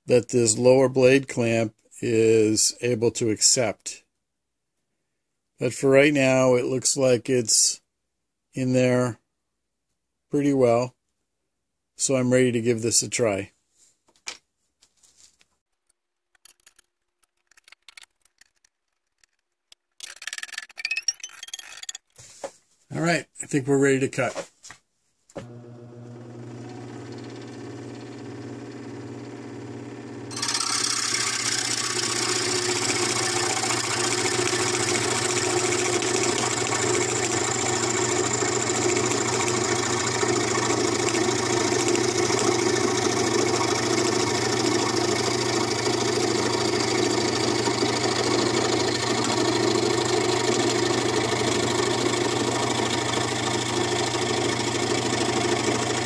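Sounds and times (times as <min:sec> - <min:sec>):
scroll saw motor hum: 0:25.4 - 0:56.0.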